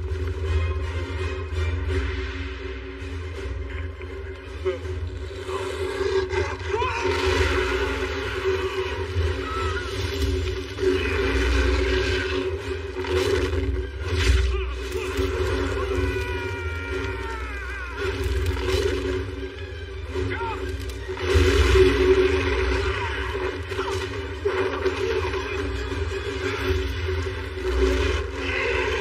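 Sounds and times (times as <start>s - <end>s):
action film music: 0.0s - 29.0s
monster roaring: 26.4s - 29.0s.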